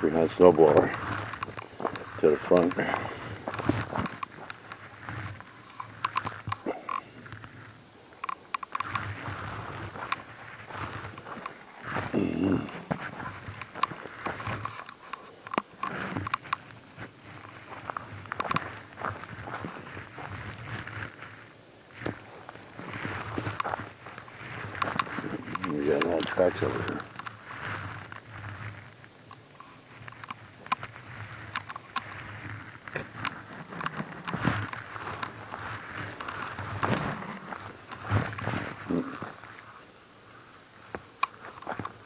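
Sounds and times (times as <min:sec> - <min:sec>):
footsteps crunching through snow: 0:00.0 - 0:42.0.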